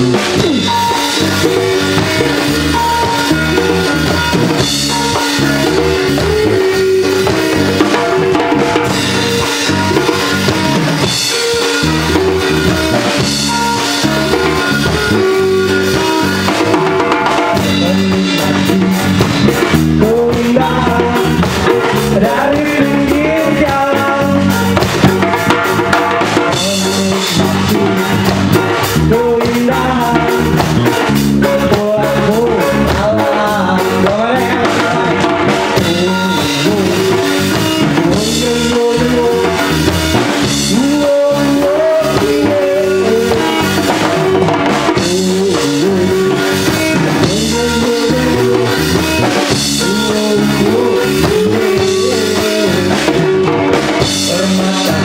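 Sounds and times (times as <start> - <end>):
live rock band: 0.0 - 55.0
person singing: 0.0 - 55.0.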